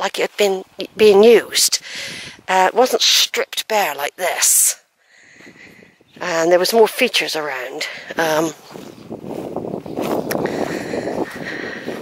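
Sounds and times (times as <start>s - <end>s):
footsteps in dry grass: 5.2s - 12.0s.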